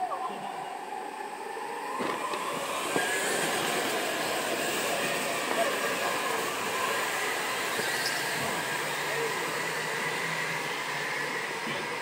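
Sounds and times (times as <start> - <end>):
go-kart motors: 0.0 - 12.0.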